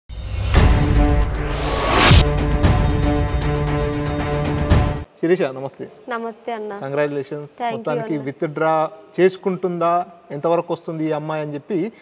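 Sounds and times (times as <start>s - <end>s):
crickets chirring: 2.3s - 12.0s
man talking: 6.9s - 12.0s.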